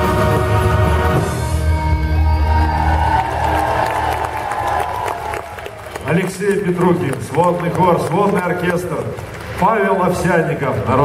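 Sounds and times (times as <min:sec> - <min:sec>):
military brass band: 0:00.0 - 0:02.8
audience applause and cheering: 0:00.0 - 0:11.0.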